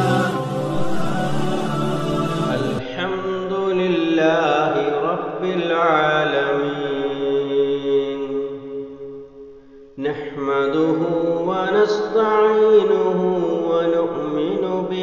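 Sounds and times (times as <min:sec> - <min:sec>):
person singing melodic chant: 0:00.0 - 0:08.6.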